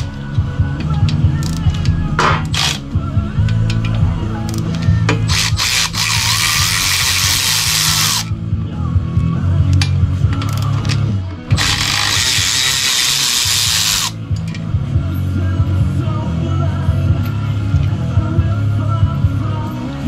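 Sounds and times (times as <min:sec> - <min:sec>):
rock music with steady beat: 0:00.0 - 0:20.0
cordless power ratchet running: 0:02.5 - 0:02.8, 0:05.3 - 0:08.3, 0:11.5 - 0:14.2.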